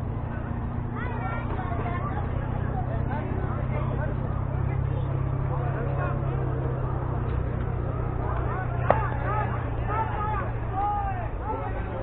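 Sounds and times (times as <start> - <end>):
children calling and shouting: 0.0 - 12.0.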